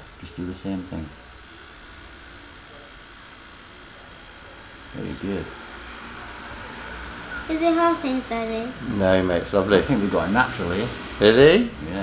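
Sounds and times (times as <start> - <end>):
tattoo machine humming: 0.0 - 12.0.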